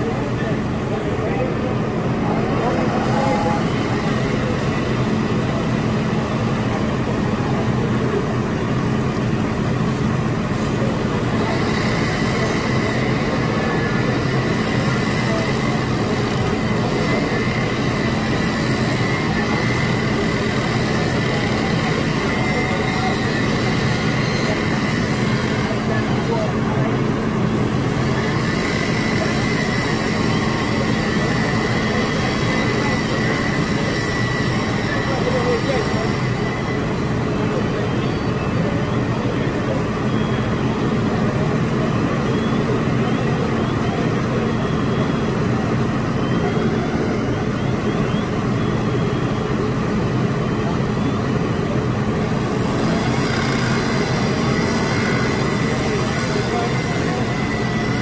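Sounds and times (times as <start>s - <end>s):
diesel engine drone: 0.0s - 58.0s
high-pitched whine: 0.0s - 58.0s.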